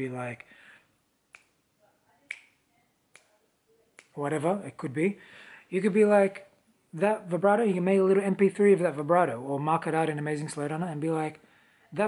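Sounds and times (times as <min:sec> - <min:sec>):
fingers snapping: 0:01.3 - 0:01.6, 0:02.3 - 0:03.3, 0:04.0 - 0:04.2.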